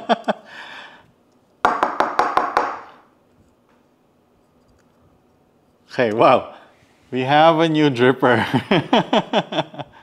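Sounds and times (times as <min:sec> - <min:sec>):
man laughing: 0:00.0 - 0:00.5, 0:08.4 - 0:10.0.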